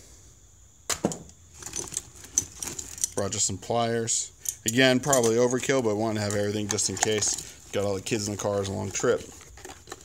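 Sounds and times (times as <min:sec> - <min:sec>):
metal tools clinking: 0:01.5 - 0:10.0.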